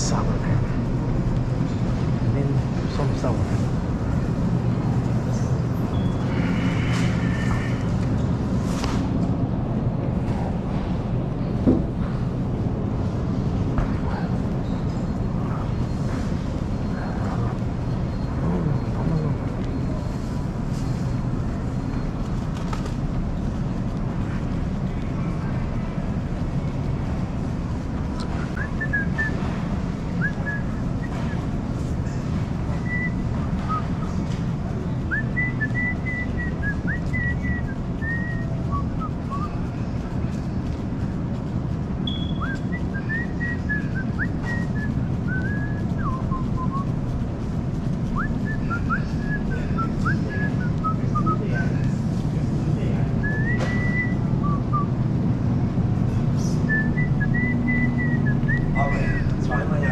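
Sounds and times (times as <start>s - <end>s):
shopping cart rolling on floor: 40.1s - 51.6s
short high whistled chirps: 42.0s - 46.8s.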